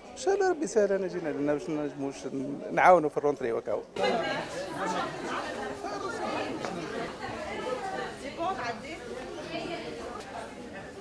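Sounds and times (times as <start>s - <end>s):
chatter of overlapping voices: 0.0s - 11.0s.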